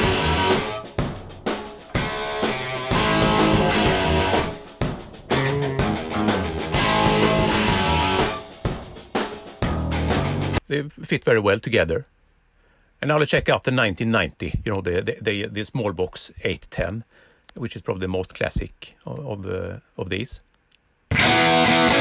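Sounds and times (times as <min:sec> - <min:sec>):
electric guitars: 0:00.0 - 0:08.7, 0:09.4 - 0:10.6, 0:21.1 - 0:22.0
bass guitar: 0:00.0 - 0:10.6, 0:21.1 - 0:22.0
drum kit: 0:00.0 - 0:10.6.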